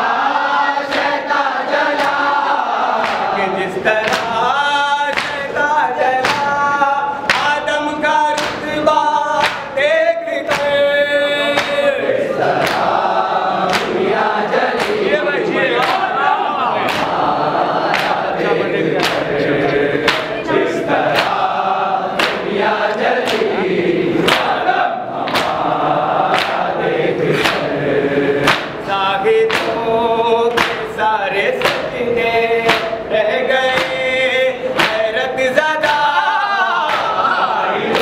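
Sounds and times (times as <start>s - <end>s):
male voices chanting in chorus: 0.0s - 38.0s
rhythmic chest-beating strikes: 0.0s - 38.0s
chest-beating slaps: 12.5s - 13.0s, 13.6s - 14.1s, 14.7s - 16.2s, 16.8s - 17.3s, 17.9s - 21.6s, 22.2s - 23.6s, 24.2s - 24.6s, 25.2s - 25.7s, 26.3s - 26.7s, 27.3s - 27.7s, 28.4s - 28.8s, 29.5s - 29.8s, 30.5s - 31.0s, 32.7s - 33.0s.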